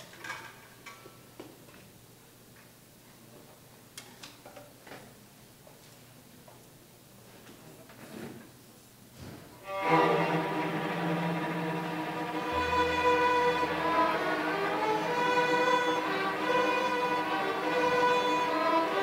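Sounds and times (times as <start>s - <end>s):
string ensemble playing: 9.6s - 19.0s.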